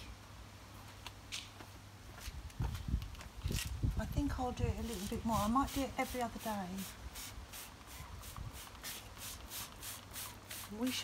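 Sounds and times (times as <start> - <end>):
spray bottle hissing sprays: 4.9 - 11.0.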